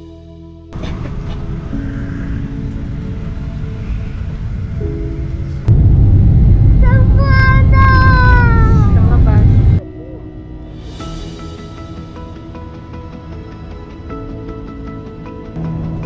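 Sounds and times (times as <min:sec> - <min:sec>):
jet airliner cabin rumble: 0:00.8 - 0:09.8.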